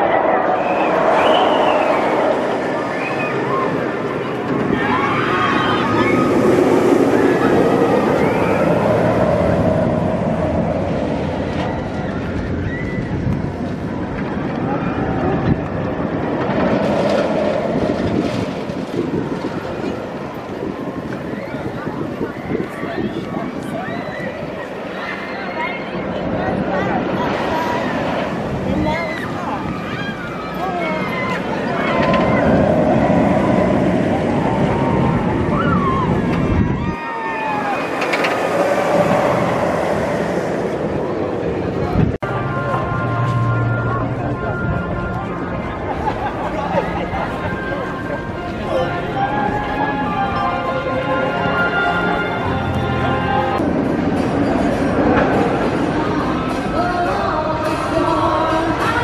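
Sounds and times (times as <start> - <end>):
people's voices: 0.0 - 59.0
roller coaster rumbling on track: 0.0 - 59.0.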